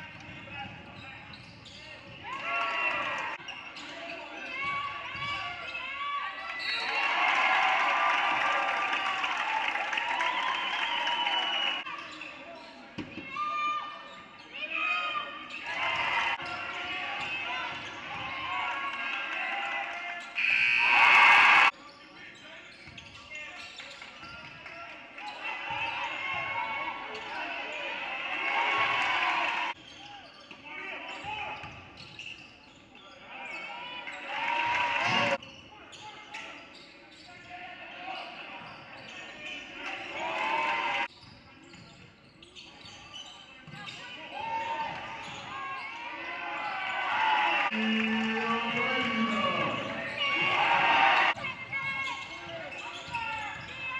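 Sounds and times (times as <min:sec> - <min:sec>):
voices ringing in a hall: 0:00.0 - 0:07.3, 0:11.4 - 0:53.9
sneakers squeaking: 0:00.1 - 0:06.0, 0:12.0 - 0:14.6, 0:20.2 - 0:24.6, 0:29.7 - 0:34.3, 0:35.2 - 0:37.6, 0:38.2 - 0:40.1, 0:41.0 - 0:46.1, 0:47.7 - 0:53.9.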